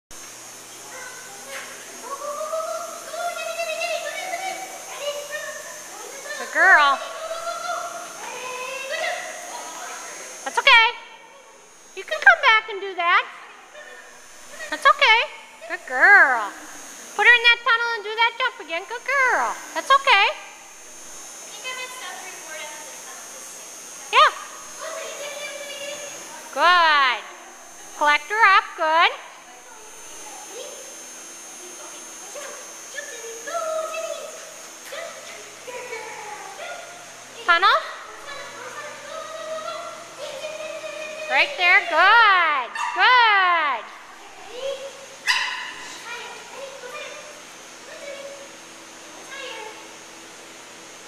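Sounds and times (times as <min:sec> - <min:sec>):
dog barking: 0:42.7 - 0:43.1, 0:45.2 - 0:45.9.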